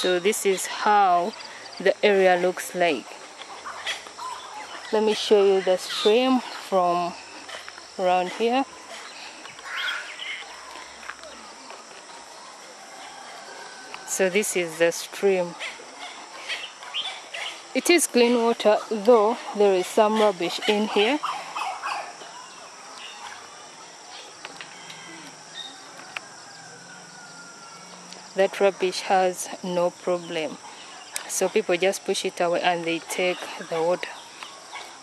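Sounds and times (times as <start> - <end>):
high insect drone: 0.0 - 35.0
faint bird chirps: 9.0 - 12.6.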